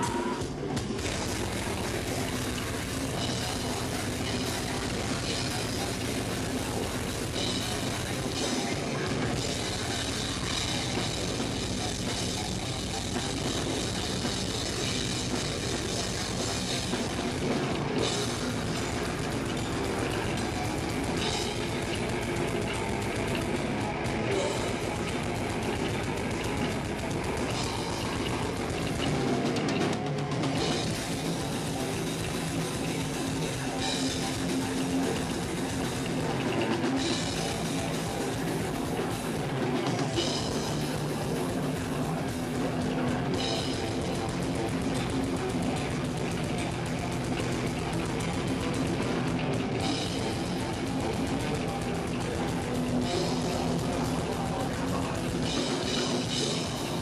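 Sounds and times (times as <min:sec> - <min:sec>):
bass: 0:00.0 - 0:57.0
distorted guitar: 0:00.0 - 0:57.0
drums: 0:00.0 - 0:57.0.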